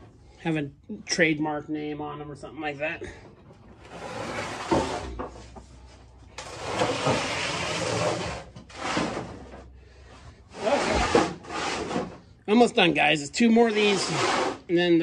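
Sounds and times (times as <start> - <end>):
metal bin scraping on concrete: 3.7 - 5.6, 6.3 - 12.3, 13.5 - 15.0.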